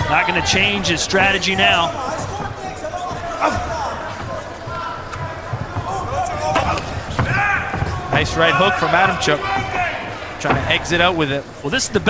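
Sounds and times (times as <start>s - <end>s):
people shouting: 0.0s - 10.9s
arena crowd noise: 0.0s - 12.0s.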